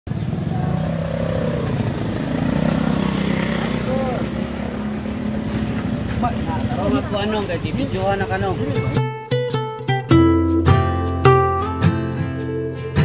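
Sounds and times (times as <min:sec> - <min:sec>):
engine running: 0:00.1 - 0:09.0.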